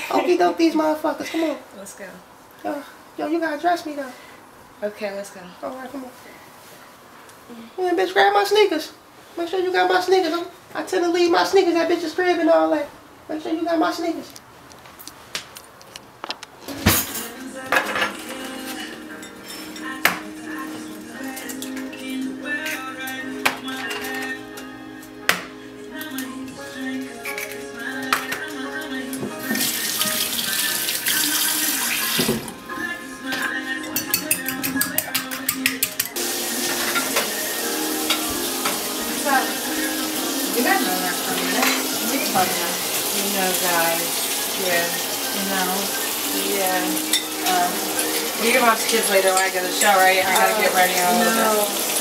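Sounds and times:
dishes and cutlery clattering: 16.7 - 20.2, 21.3 - 24.4, 33.3 - 37.4, 41.4 - 42.5, 47.0 - 51.7
food sizzling in a pan: 29.4 - 32.4, 36.2 - 52.0.

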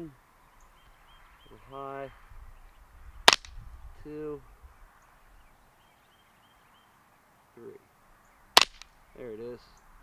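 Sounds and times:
suppressed rifle shot: 3.3 - 3.6, 8.6 - 8.9.

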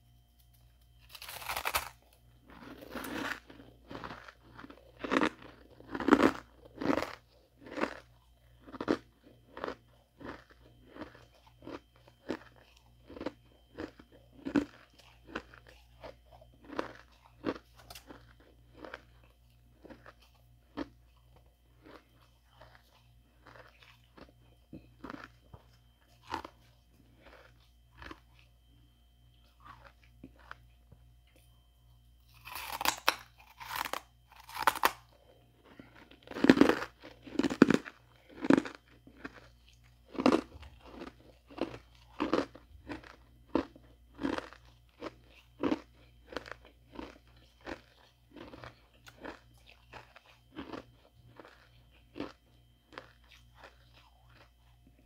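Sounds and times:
ice crunching being chewed: 0.4 - 55.0.

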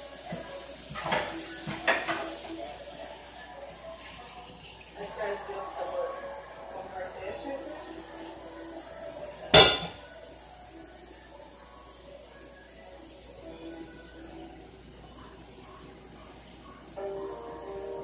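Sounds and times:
dishes and utensils clattering: 0.3 - 2.6, 9.4 - 10.2.

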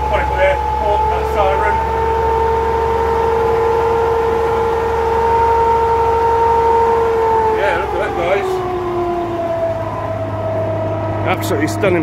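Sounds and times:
fire engine running: 0.0 - 12.0.

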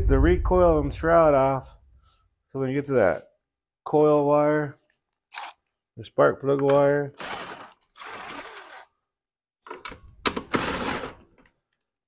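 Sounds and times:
cordless power driver running: 7.2 - 8.8.

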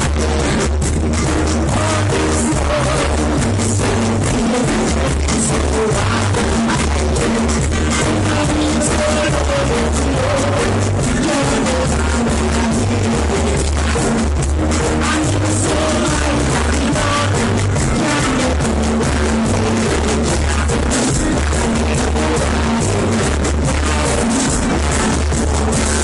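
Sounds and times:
deep bass line: 0.0 - 26.0
reggae band playing: 0.0 - 26.0.

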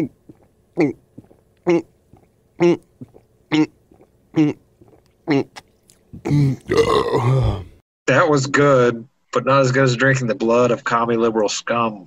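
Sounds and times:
man swallowing a drink: 0.0 - 7.7
man burping loudly: 6.2 - 7.8.

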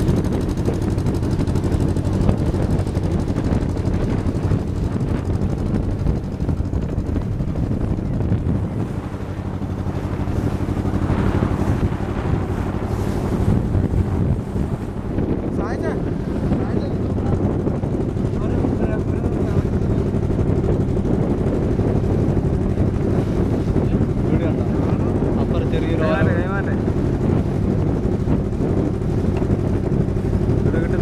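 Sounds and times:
boat engine running: 0.0 - 31.0
wind buffeting microphone: 0.0 - 31.0.

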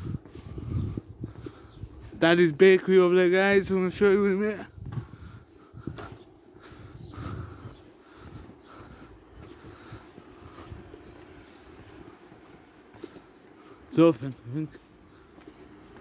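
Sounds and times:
footsteps on pavement: 0.0 - 16.0
low street background: 0.0 - 16.0.

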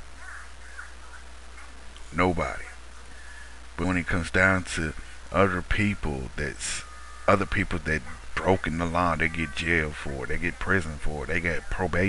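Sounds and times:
low steady hum and hiss: 0.0 - 12.0.

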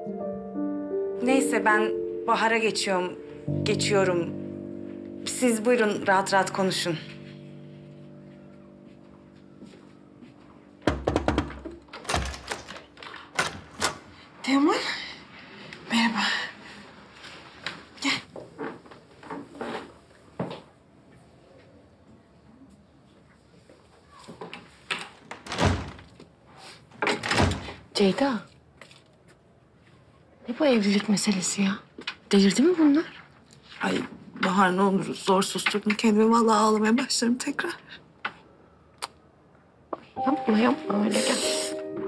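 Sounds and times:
faint music: 0.0 - 18.0, 38.4 - 42.0
knocks and clicks on wooden door: 10.8 - 14.1
light knocks on wooden door: 10.9 - 11.8
door shutting thud: 10.9 - 14.1.

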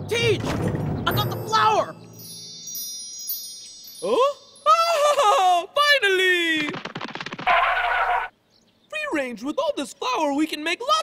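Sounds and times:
shimmering chime sparkle: 1.4 - 5.3.

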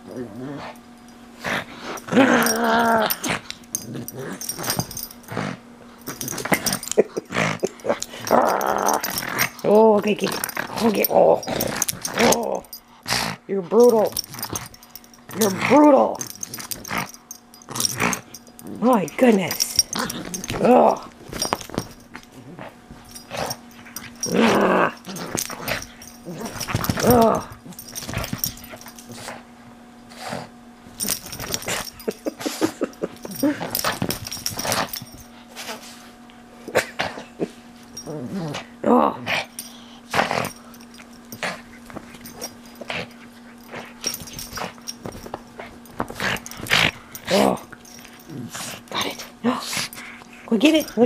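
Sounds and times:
dog growling: 0.0 - 0.8, 1.4 - 29.4, 30.1 - 35.8, 36.7 - 40.6, 46.0 - 50.1
pug grunting: 1.4 - 14.6, 22.4 - 29.3.

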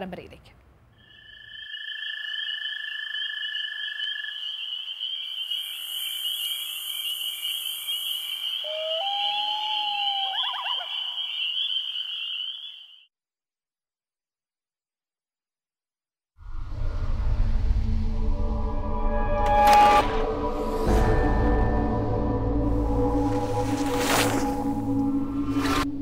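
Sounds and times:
gliding whistle: 8.5 - 13.0.

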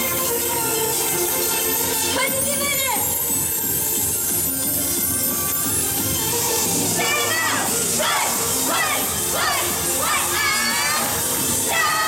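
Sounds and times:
pop music backing track: 0.0 - 12.0
people shouting and cheering: 6.4 - 12.0.

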